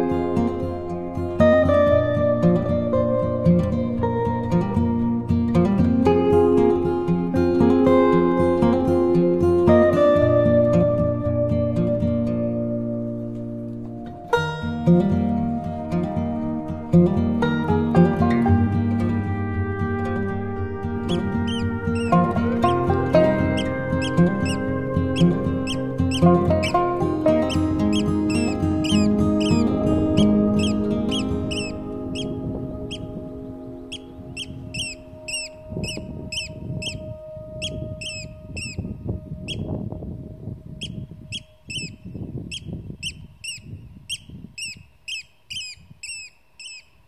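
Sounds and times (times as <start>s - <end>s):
soft plucked-string music: 0.0s - 41.4s
oystercatchers piping: 20.9s - 39.7s, 40.8s - 47.0s.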